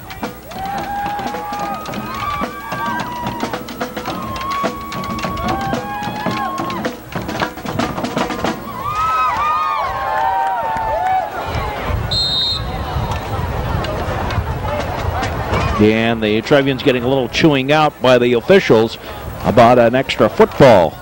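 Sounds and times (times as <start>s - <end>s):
drum hits: 0.0s - 8.9s.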